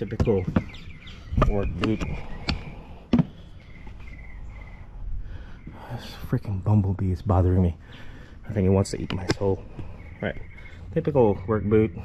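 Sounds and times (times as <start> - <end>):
bird chirps: 0.0 - 12.0.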